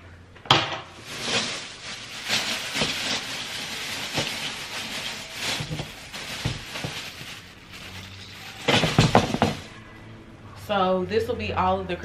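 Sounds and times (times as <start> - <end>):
plastic bag crinkling: 0.9 - 9.7.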